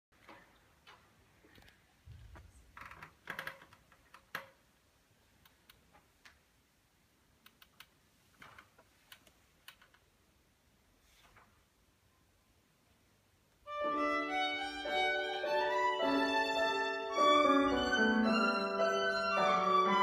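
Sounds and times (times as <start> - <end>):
small clicks: 7.4 - 10.1.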